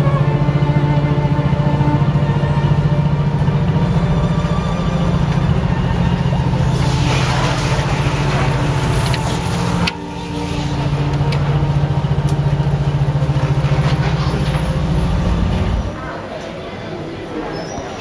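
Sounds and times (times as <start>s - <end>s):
ship engine droning: 0.0s - 17.3s
hiss: 6.4s - 11.0s.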